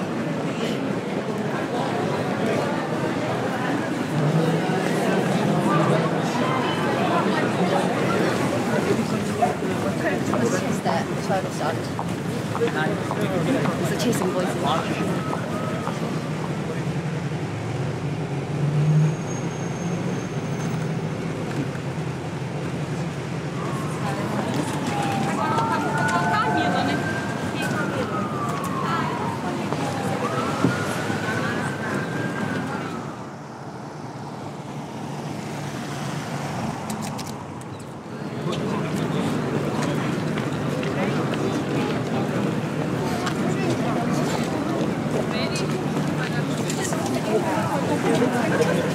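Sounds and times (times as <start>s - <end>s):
voices: 0.0s - 17.7s, 20.4s - 36.0s, 37.5s - 48.9s
bus engine and road noise: 0.0s - 48.9s
crowd chatter: 0.0s - 48.9s.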